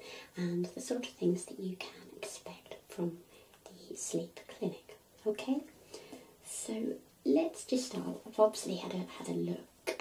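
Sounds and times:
woman speaking softly: 0:00.4 - 0:05.8, 0:06.4 - 0:10.0.

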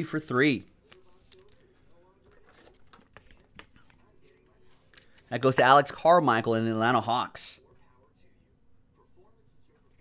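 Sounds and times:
trading cards clicking and rustling: 0:00.9 - 0:05.7.

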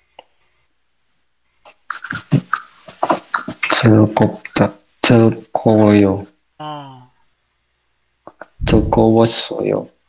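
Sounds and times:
person speaking: 0:01.7 - 0:07.1, 0:08.3 - 0:09.9.

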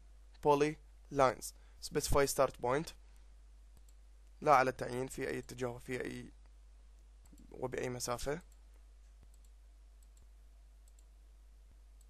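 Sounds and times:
faint low hum: 0:00.0 - 0:12.0
computer mouse clicks: 0:03.8 - 0:04.0, 0:07.2 - 0:07.6, 0:08.4 - 0:11.1.

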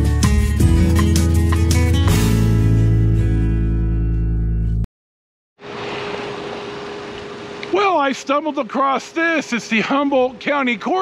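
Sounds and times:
acoustic guitar strummed chord: 0:00.7 - 0:04.8
steady outdoor hiss: 0:05.6 - 0:11.0.

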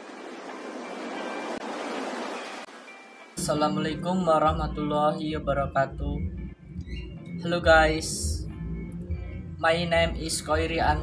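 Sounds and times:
steady rushing noise: 0:00.0 - 0:03.4
faint music tones: 0:00.0 - 0:11.0.

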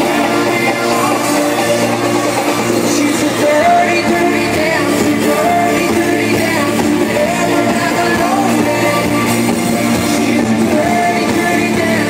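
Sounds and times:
live band music through speakers: 0:00.0 - 0:12.0.

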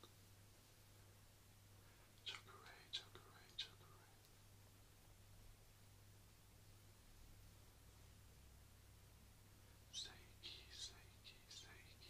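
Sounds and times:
faint low hum: 0:00.0 - 0:12.0
man whispering: 0:02.2 - 0:04.3, 0:09.8 - 0:12.0.

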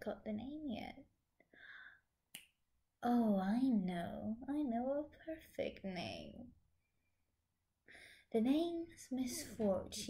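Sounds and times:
finger snap: 0:02.3 - 0:02.6.

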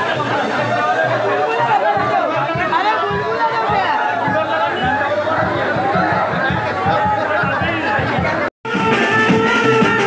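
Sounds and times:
crowd talking and calling: 0:00.0 - 0:10.0
music: 0:00.0 - 0:10.0.

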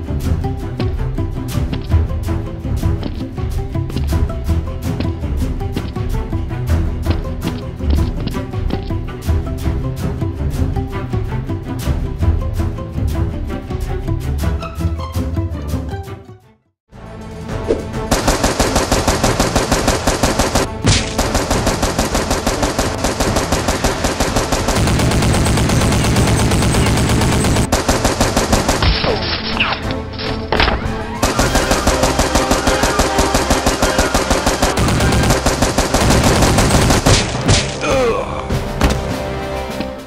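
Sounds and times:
background music: 0:00.0 - 0:40.0
automatic gunfire sound effect: 0:18.1 - 0:29.2, 0:31.1 - 0:37.5.

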